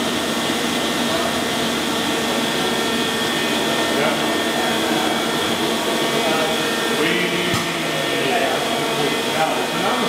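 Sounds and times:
machinery whirring: 0.0s - 10.0s.

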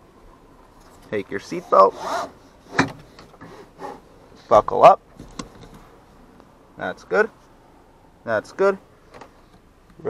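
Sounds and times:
seatbelt webbing sliding: 1.6s - 4.0s.

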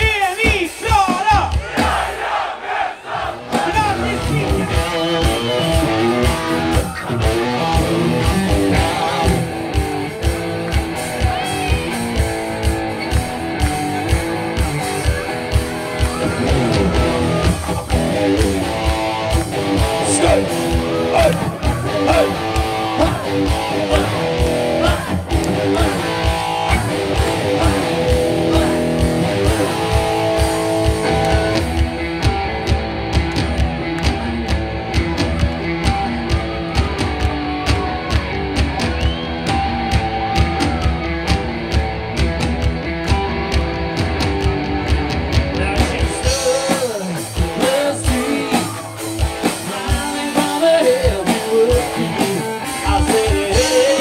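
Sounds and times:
steady drum beat: 0.0s - 54.0s
electric guitar: 3.4s - 54.0s.

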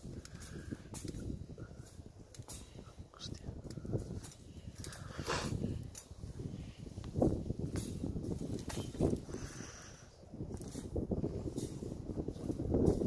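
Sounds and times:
wind rumble on microphone: 0.0s - 13.0s
wire cage rustling and clicking: 0.0s - 13.0s.

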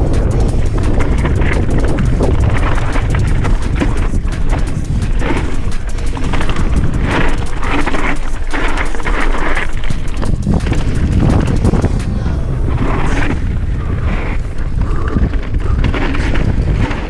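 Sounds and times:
bike rattling over rocks: 0.0s - 17.0s
wind buffeting microphone: 0.0s - 17.0s.

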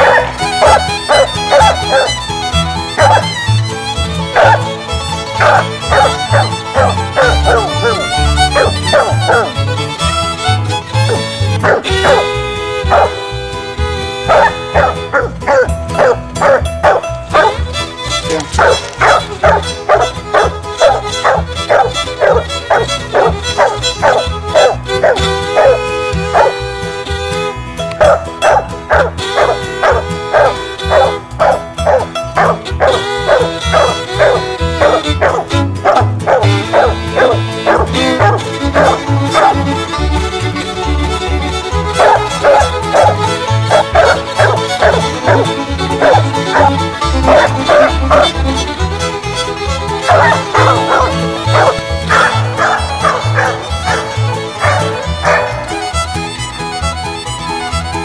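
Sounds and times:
dog barking: 0.0s - 2.2s, 3.0s - 3.4s, 4.4s - 4.7s, 5.4s - 9.6s, 11.1s - 12.3s, 12.9s - 13.2s, 14.3s - 17.6s, 18.6s - 26.6s, 28.0s - 39.6s, 42.0s - 48.4s, 50.0s - 55.7s.

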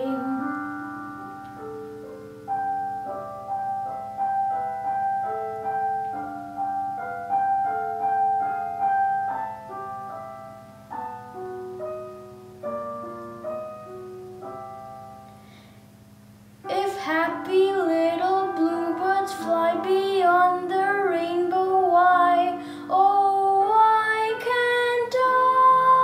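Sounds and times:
boy singing: 0.0s - 1.0s, 16.6s - 26.0s
slow piano accompaniment: 0.0s - 26.0s.

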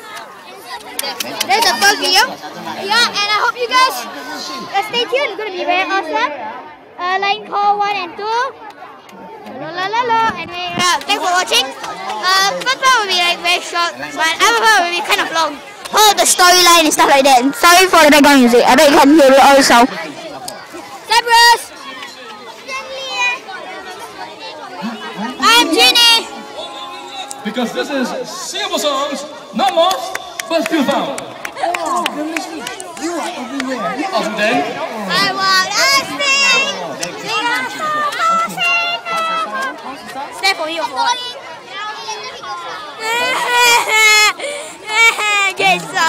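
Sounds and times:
crowd chatter: 0.0s - 46.0s.

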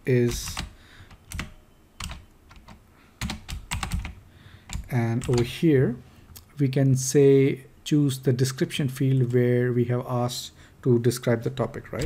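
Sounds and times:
typing on a computer keyboard: 0.3s - 5.5s.

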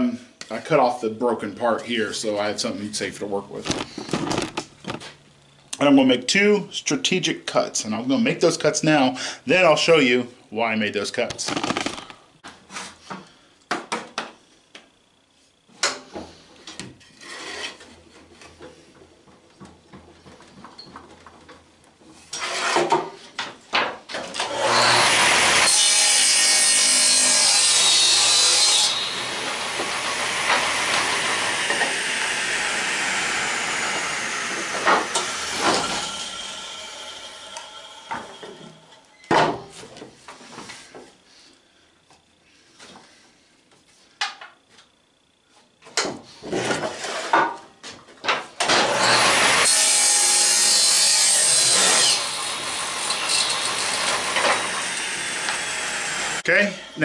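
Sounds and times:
table saw cutting wood: 22.3s - 22.9s, 24.4s - 39.0s, 48.6s - 57.0s.

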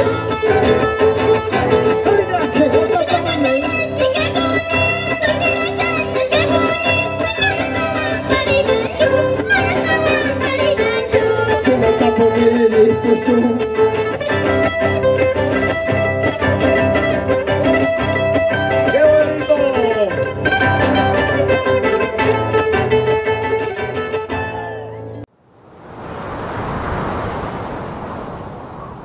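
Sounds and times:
folk music of plucked and bowed strings: 0.0s - 24.9s
rushing noise: 25.4s - 29.0s.

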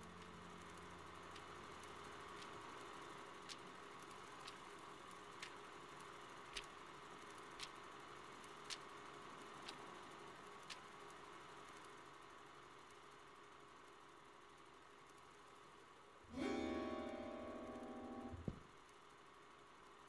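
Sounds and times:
faint room hiss: 0.0s - 20.0s
click: 9.6s - 9.8s
sustained keyboard chord: 16.3s - 18.6s.

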